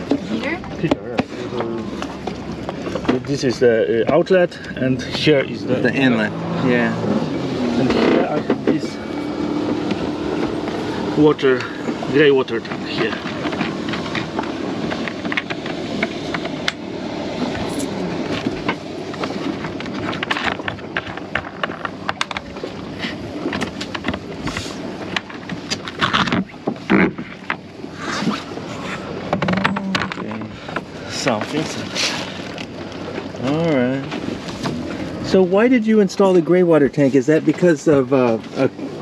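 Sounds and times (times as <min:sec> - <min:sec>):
wind and water rushing: 0:00.0 - 0:39.0.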